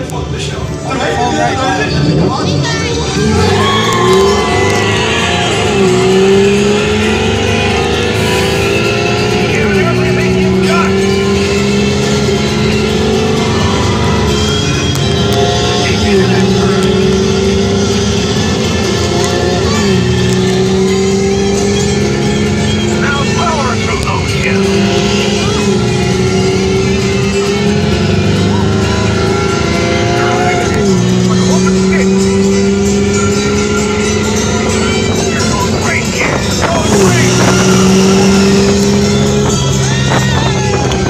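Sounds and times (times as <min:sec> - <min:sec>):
ride vehicle engine shifting: 0:00.0 - 0:41.0
track noise: 0:00.0 - 0:41.0
rushing wind: 0:34.8 - 0:41.0.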